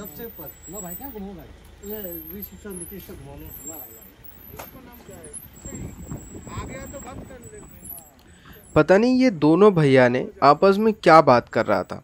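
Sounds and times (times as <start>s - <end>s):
two men talking: 0.0s - 12.0s.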